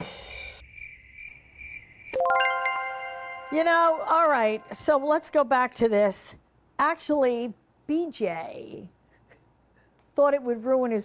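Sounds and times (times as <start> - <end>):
cricket chirping: 0.0 - 2.2.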